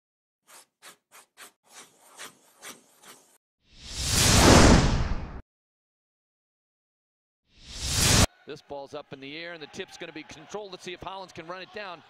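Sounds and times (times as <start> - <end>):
scraping strokes: 0.4 - 3.4.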